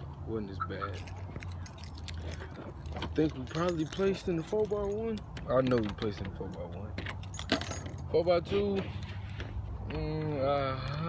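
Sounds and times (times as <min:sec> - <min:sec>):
vehicle rumble: 0:00.0 - 0:11.0
metallic jingling: 0:00.8 - 0:08.6.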